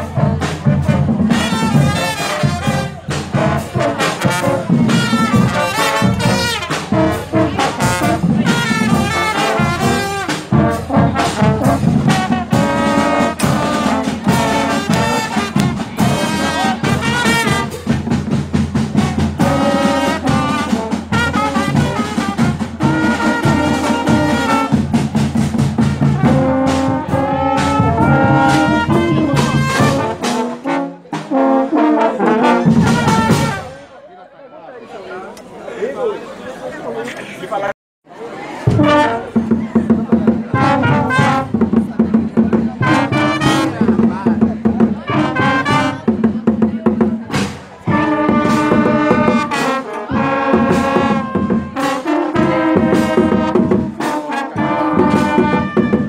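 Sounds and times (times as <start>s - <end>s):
snare and bass drums: 0.0s - 33.7s, 38.7s - 56.0s
brass instruments playing tune: 0.0s - 34.0s, 38.6s - 46.3s, 47.2s - 56.0s
murmur of voices: 0.0s - 56.0s.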